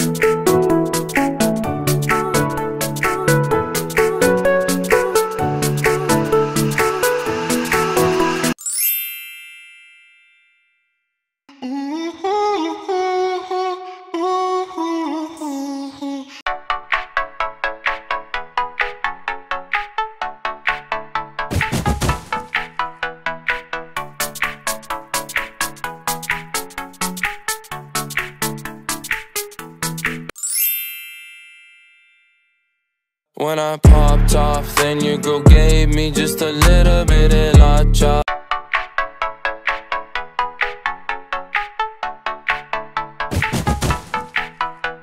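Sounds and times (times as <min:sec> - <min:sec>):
electronic music with plucked notes: 0:00.0 - 0:08.6, 0:16.5 - 0:30.3, 0:33.8 - 0:45.0
high-pitched chime: 0:05.6 - 0:10.8, 0:30.3 - 0:32.8.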